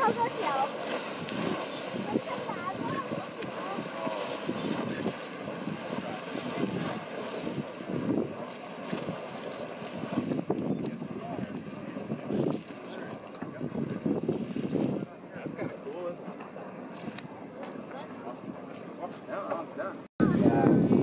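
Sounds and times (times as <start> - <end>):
geyser water splashing and gushing: 0.0 - 20.9
wind buffeting microphone: 0.0 - 21.0.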